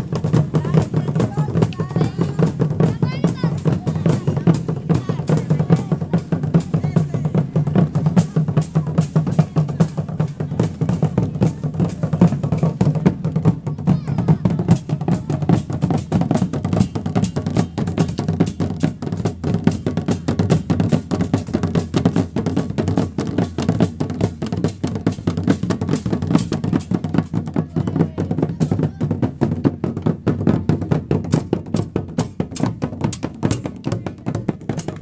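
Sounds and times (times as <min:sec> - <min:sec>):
marching drums beating: 0:00.0 - 0:35.0.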